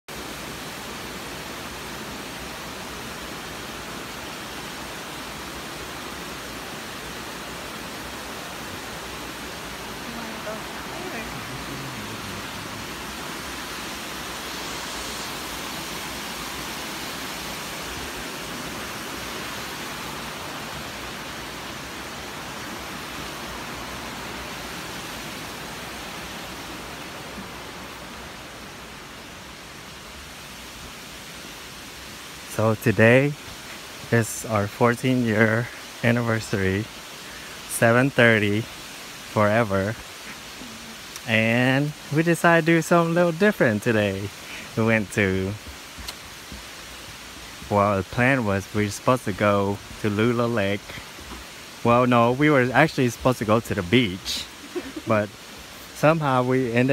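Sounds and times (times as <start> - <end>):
waterfall rushing over rocks: 0.1 - 56.9.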